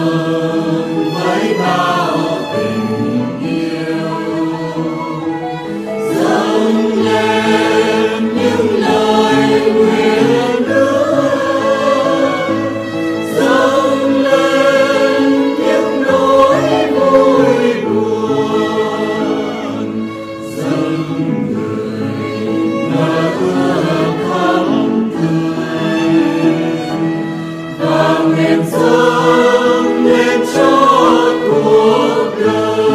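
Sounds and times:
choir singing a hymn: 0:00.0 - 0:32.9.

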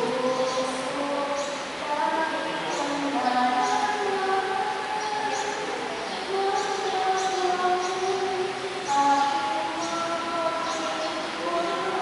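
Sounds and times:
slow hymn: 0:00.0 - 0:12.0.

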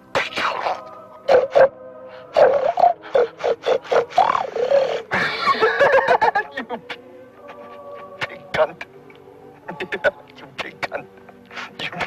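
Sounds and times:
soft choir-like music: 0:00.0 - 0:12.0
distorted man's voice on telephone: 0:08.2 - 0:08.9.

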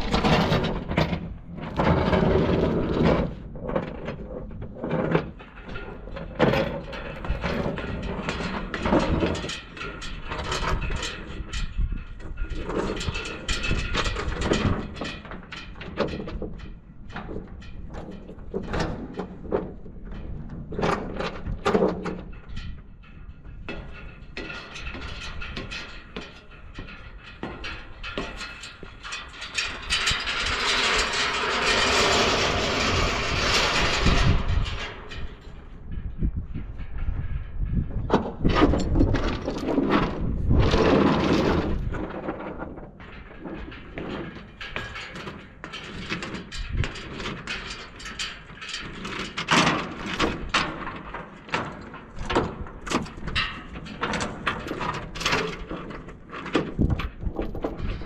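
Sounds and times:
footsteps on steel stairs: 0:15.9 - 0:29.9, 0:41.7 - 0:49.2.

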